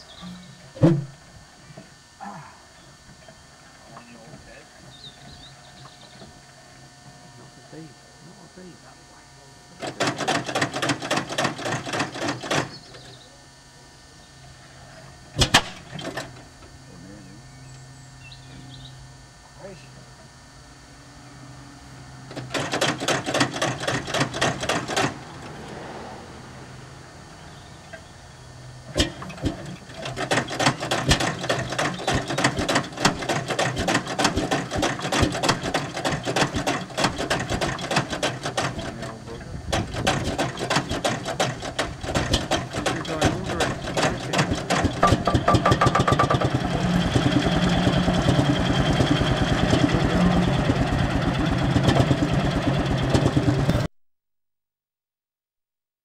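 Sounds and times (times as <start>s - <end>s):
single-cylinder engine knocking: 9.8s - 12.7s, 22.4s - 25.2s, 29.0s - 39.1s, 39.7s - 53.9s.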